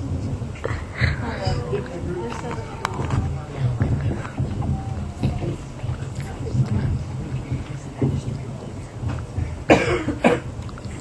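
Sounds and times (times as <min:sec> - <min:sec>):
low steady hum: 0:00.0 - 0:11.0
person coughing: 0:09.7 - 0:10.5.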